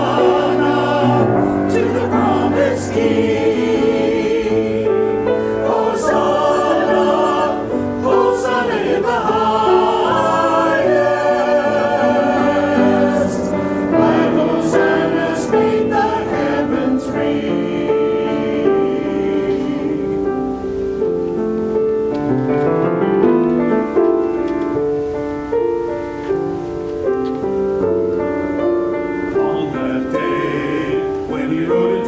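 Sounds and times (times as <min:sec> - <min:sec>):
church choir singing: 0:00.0 - 0:21.4, 0:26.4 - 0:32.0.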